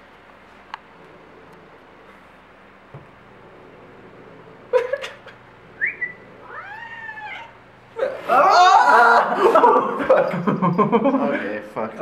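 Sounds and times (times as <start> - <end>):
cat meowing and yowling: 6.4 - 7.6.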